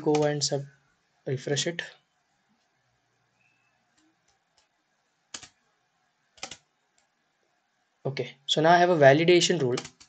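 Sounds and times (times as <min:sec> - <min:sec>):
soft keyboard or mouse clicks: 0:00.0 - 0:00.4, 0:03.9 - 0:05.6, 0:06.4 - 0:07.1, 0:09.7 - 0:10.0.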